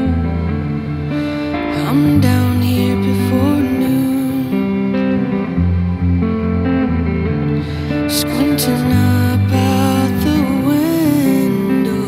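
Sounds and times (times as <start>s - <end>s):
electric guitar playing clean chords: 0.0s - 12.0s.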